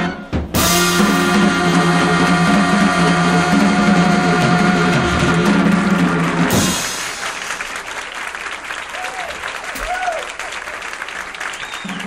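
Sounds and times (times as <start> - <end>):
jazz trio sustained chord: 0.0 - 6.8.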